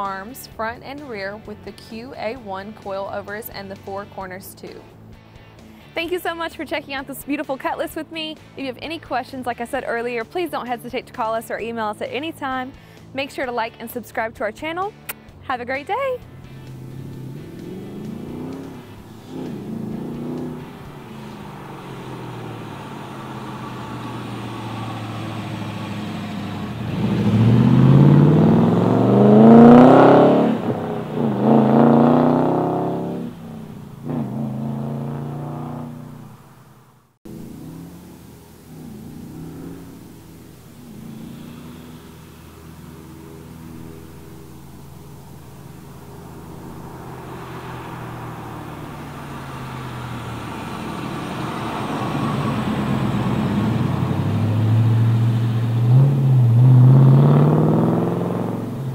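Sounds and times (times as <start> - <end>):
car engine accelerating past: 16.2 - 58.9.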